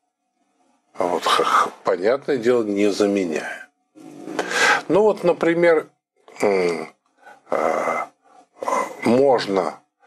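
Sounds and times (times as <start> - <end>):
man speaking: 1.0 - 9.8
man breathing loudly: 4.4 - 4.9.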